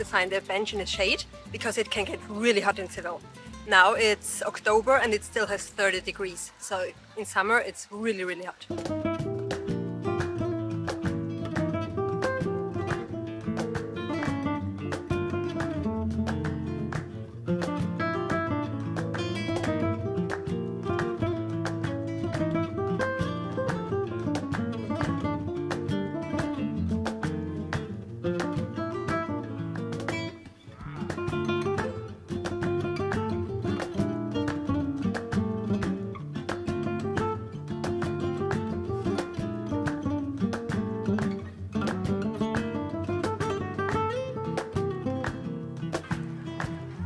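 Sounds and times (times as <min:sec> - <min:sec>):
flamenco acoustic guitar: 0:00.0 - 0:07.6, 0:08.6 - 0:47.0.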